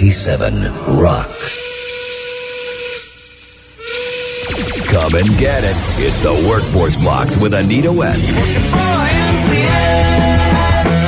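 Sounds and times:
steady tone: 1.2s - 9.6s
falling pitch sweeps: 1.4s - 8.6s
hiss: 1.7s - 5.0s.

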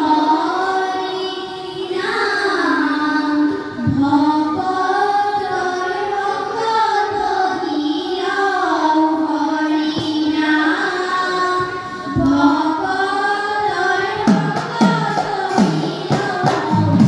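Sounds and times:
children singing a hymn in unison: 0.0s - 17.0s.

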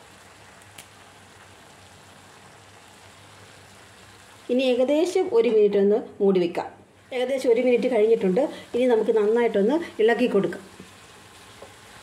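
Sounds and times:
food hissing in a pan: 0.0s - 4.8s, 7.0s - 12.0s.

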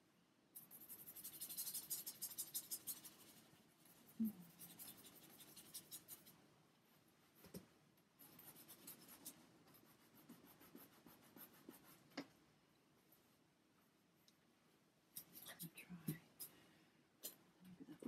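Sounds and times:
paintbrush scratching on wood: 0.6s - 6.4s, 8.2s - 12.1s.

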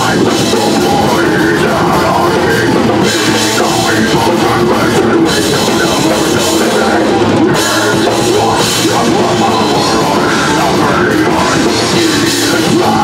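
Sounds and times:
distorted electric guitars: 0.0s - 13.0s
pounding drum kit: 0.0s - 13.0s.

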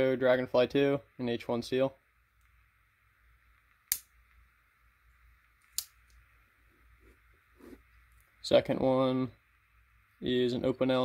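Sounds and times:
folding knife blade clicking: 5.7s - 6.0s.

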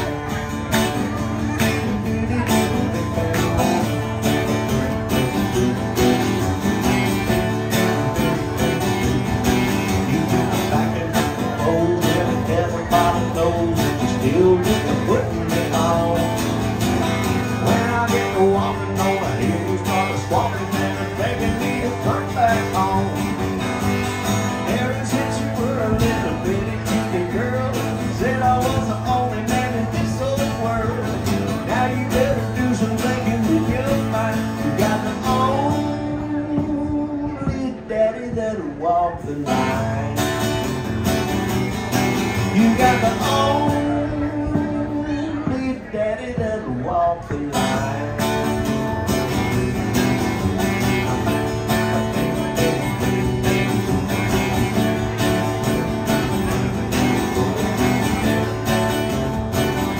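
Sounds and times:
man singing into microphone: 0.0s - 4.5s, 6.4s - 40.9s, 42.2s - 49.0s, 51.0s - 55.7s
acoustic guitar strummed: 0.0s - 59.9s.

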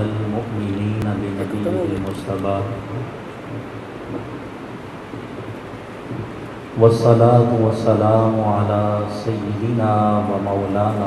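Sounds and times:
microphone hiss and rumble: 0.0s - 11.0s.

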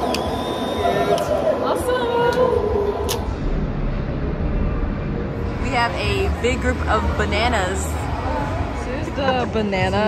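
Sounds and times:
low background rumble: 1.6s - 10.0s.

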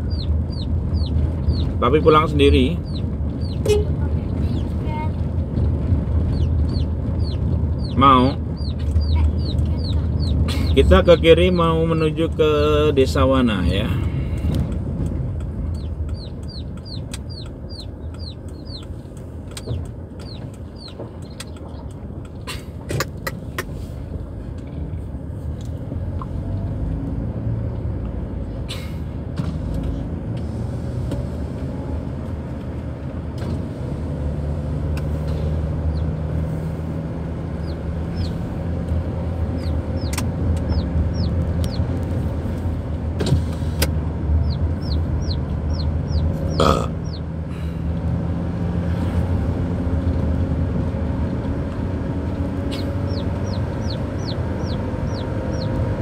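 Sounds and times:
chicks peeping: 0.0s - 4.8s, 6.3s - 12.1s, 15.7s - 22.0s, 35.8s - 36.3s, 37.5s - 38.5s, 39.4s - 42.2s, 44.4s - 47.3s, 52.6s - 56.0s
car engine and tyre rumble: 0.0s - 56.0s.

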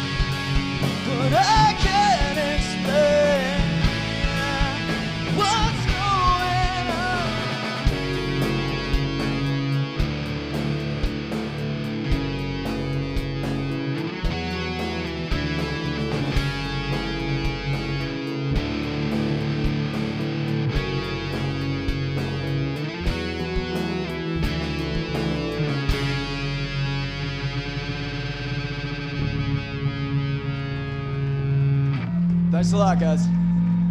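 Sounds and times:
bass guitar: 0.0s - 33.9s
drums: 0.0s - 33.9s
electric guitars: 0.0s - 33.9s.

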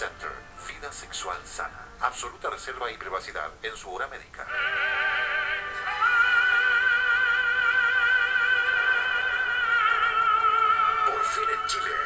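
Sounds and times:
operatic singing with vibrato: 4.5s - 12.0s.

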